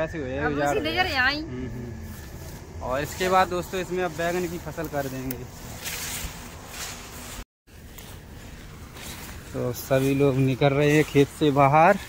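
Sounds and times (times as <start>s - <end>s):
people talking outdoors: 0.0s - 6.9s, 7.7s - 12.0s
steady low rumble: 0.0s - 11.7s.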